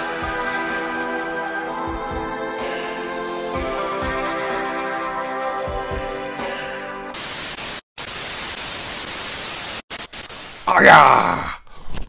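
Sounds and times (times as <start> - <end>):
television static hiss: 7.2 - 10.8.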